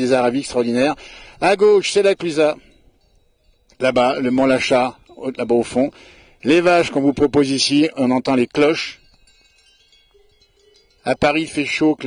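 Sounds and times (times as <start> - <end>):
cowbells ringing faintly: 0.0 - 12.0.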